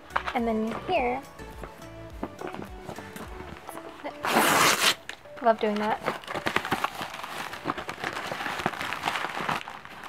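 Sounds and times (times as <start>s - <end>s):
paper envelope ripping: 4.1s - 10.0s.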